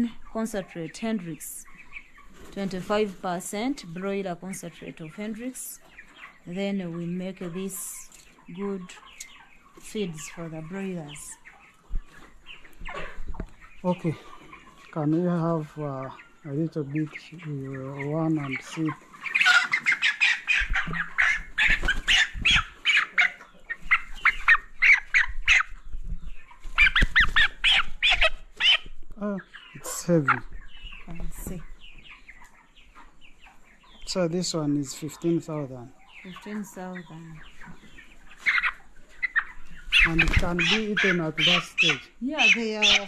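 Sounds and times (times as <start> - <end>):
chicken squawking: 17.0 - 34.1, 36.0 - 43.0.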